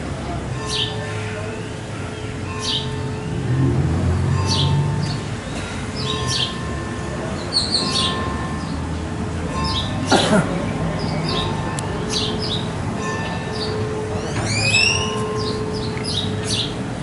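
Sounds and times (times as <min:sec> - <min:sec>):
birds chirping: 0:02.2 - 0:03.0, 0:04.5 - 0:06.6, 0:07.3 - 0:16.8.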